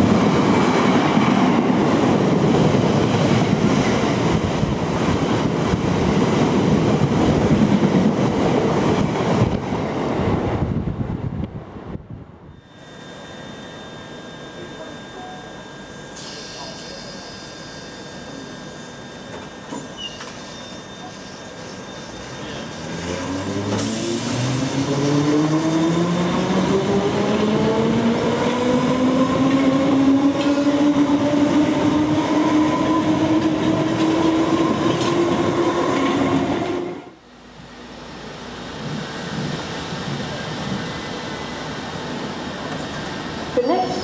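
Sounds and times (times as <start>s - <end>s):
station noise: 12.4s - 38.0s, 40.3s - 44.0s
train traction motor whine: 12.5s - 39.2s.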